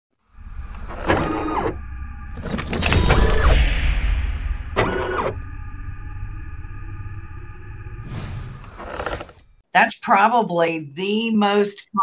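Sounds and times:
low rumble: 0.3 - 9.6.

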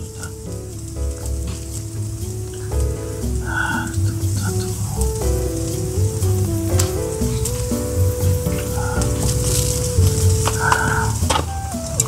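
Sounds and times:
background music with low beat: 0.0 - 12.0
chicken sizzling on a grill: 0.0 - 12.0.

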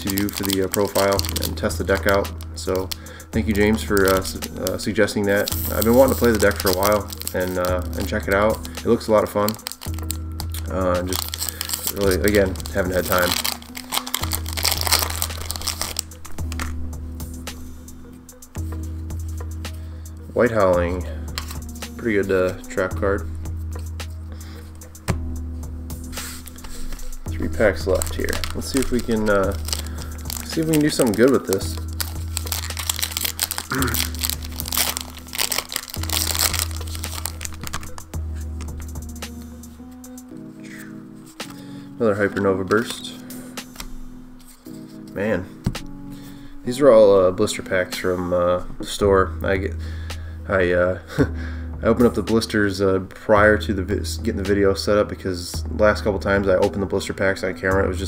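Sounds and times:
wrapper crinkling as torn open: 0.0 - 3.0, 3.6 - 16.7, 27.8 - 38.7
background music with bass: 0.0 - 58.0.

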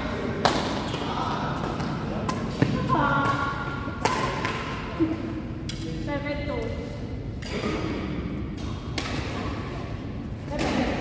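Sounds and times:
rackets hitting shuttlecock: 0.4 - 4.9, 7.3 - 9.7.

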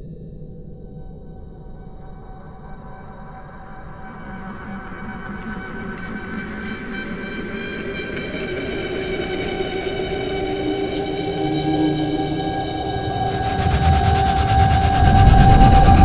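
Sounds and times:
ambient drone: 1.6 - 16.0
low rumble: 11.3 - 16.0.

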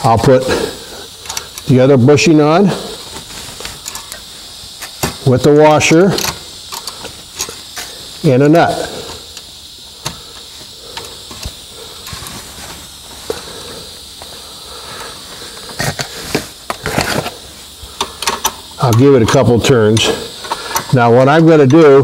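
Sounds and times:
steady hiss: 0.0 - 22.0
metallic clicks of nut fitting: 18.0 - 19.4.

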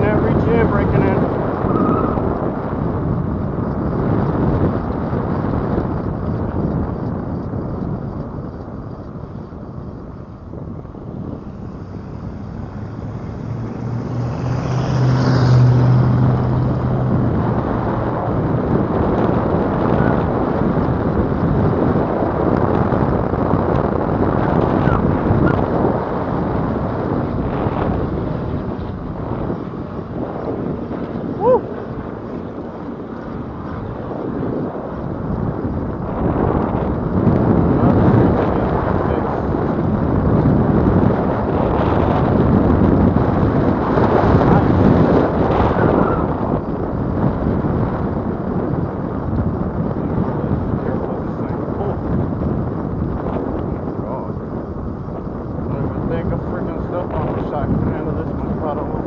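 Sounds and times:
wind buffeting microphone: 0.0 - 59.0
low hum: 4.6 - 23.3.

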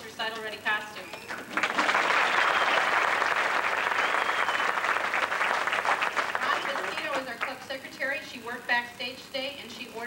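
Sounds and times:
audience applauding: 1.3 - 7.5.

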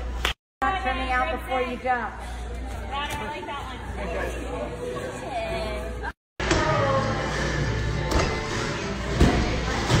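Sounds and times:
background music: 4.0 - 10.0.

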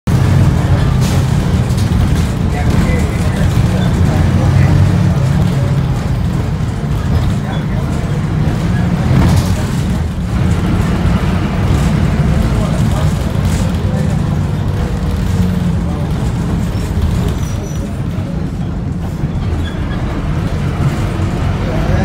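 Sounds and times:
bus engine rumble: 0.0 - 22.0
street traffic: 0.0 - 22.0
road noise: 0.1 - 22.0.

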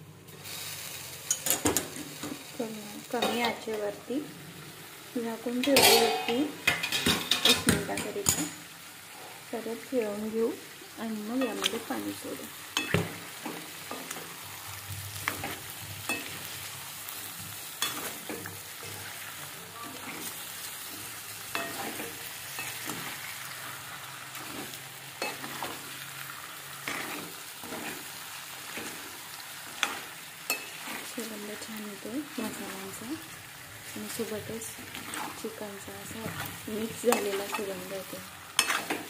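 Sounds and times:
chicken sizzling in pan: 0.0 - 39.0
spoon scraping and clinking pan: 5.6 - 8.5, 15.3 - 16.6, 21.5 - 23.0, 24.4 - 25.8, 29.8 - 31.1, 38.6 - 39.0.

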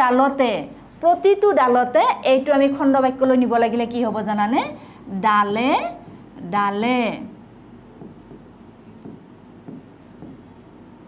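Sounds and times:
marker scratching on board: 5.0 - 11.0
marker tapping on board: 7.3 - 11.0.

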